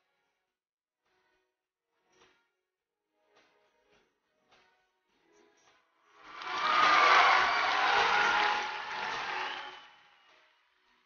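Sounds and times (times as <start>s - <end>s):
audience applauding and cheering: 6.2s - 11.0s.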